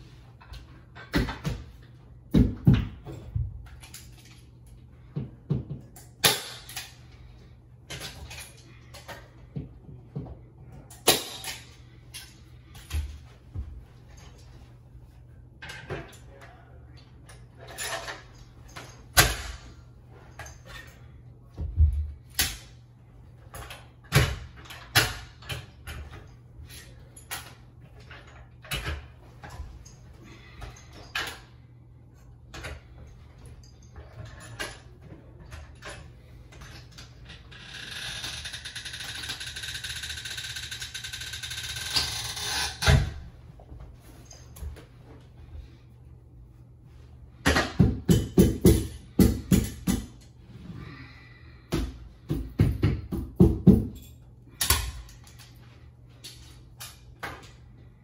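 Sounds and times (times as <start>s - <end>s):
tools clanking and knocking: 0.1s - 7.3s, 7.9s - 14.7s, 15.6s - 22.7s, 23.4s - 31.6s, 32.5s - 45.2s, 47.4s - 50.3s, 51.6s - 57.6s.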